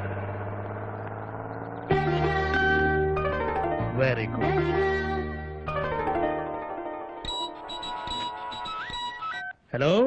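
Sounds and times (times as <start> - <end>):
plucked-string music cue: 0.0 - 9.2
held orchestral chord: 1.9 - 7.7.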